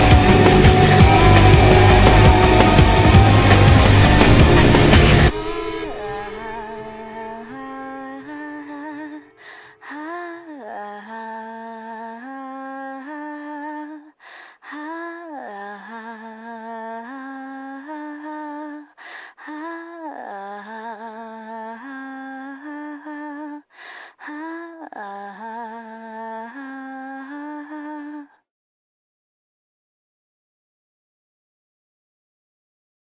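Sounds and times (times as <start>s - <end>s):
person humming a melody: 0.0s - 23.7s, 24.3s - 28.4s.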